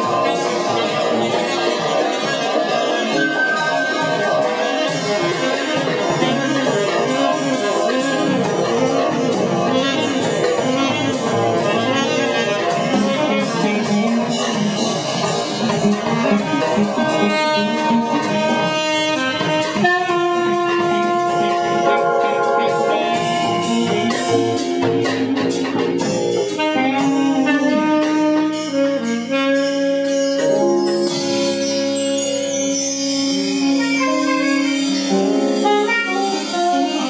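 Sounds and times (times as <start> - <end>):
drum kit with cymbal hits: 0.0 - 37.0
saxophone lines: 0.0 - 37.0.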